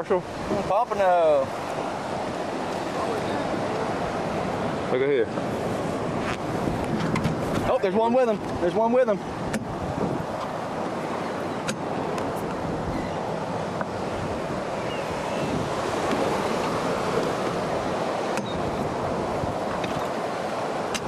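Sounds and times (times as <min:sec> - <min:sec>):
sea water moving around boat: 0:00.0 - 0:21.0
wind on microphone: 0:01.5 - 0:21.0.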